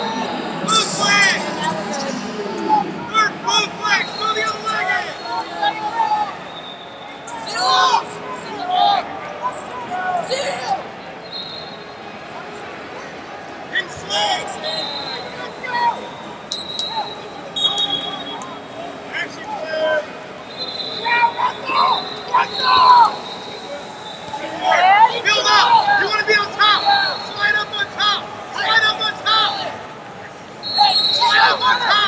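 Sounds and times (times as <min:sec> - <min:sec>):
distant whistles: 0:06.3 - 0:07.3, 0:11.2 - 0:12.0, 0:20.4 - 0:24.7, 0:30.6 - 0:32.0
people shouting in echoing hall: 0:20.9 - 0:23.8, 0:24.4 - 0:29.9, 0:30.6 - 0:32.0.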